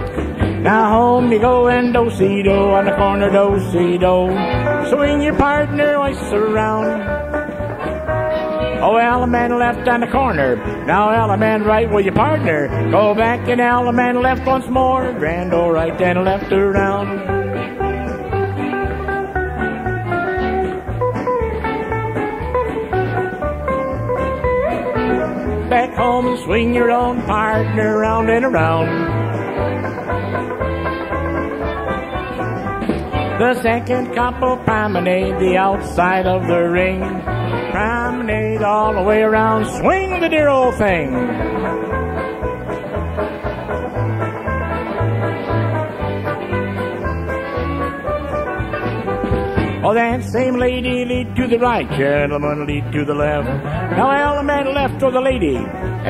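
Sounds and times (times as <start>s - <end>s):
bouncing bass line: 0.0s - 56.0s
guitar-led country band: 0.0s - 56.0s
square dance music: 0.0s - 56.0s.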